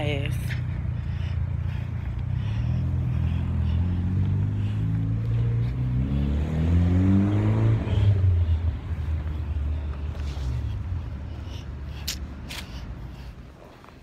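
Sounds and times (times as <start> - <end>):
car engine driving by: 0.5 - 13.2.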